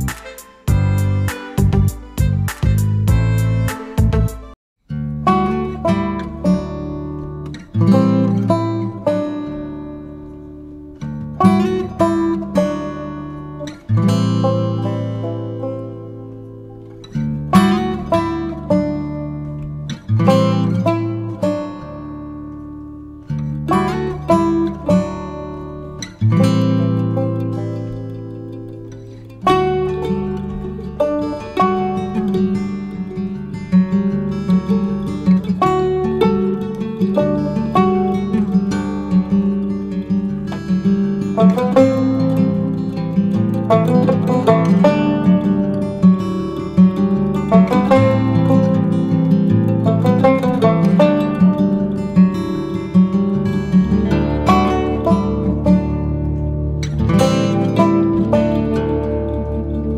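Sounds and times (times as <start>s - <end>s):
acoustic guitar chords and plucked notes: 0.0s - 59.9s.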